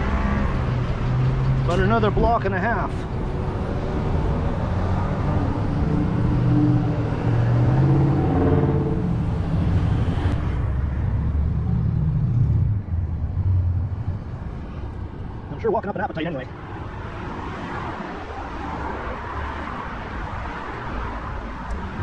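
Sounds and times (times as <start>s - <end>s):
road traffic passing: 0.0s - 22.0s.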